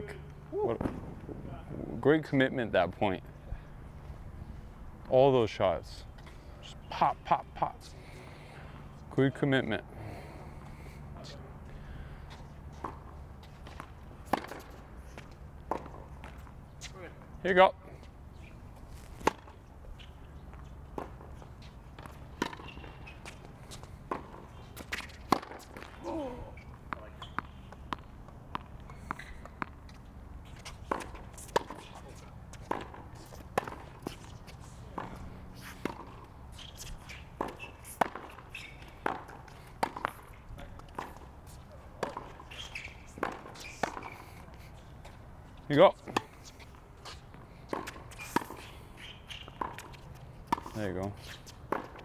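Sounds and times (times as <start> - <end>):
rackets striking tennis ball: 0.7 - 1.4, 12.7 - 16.5, 19.0 - 52.0
tennis ball bouncing: 12.7 - 16.5, 19.2 - 26.0, 26.6 - 45.2, 46.0 - 50.8, 51.4 - 52.0.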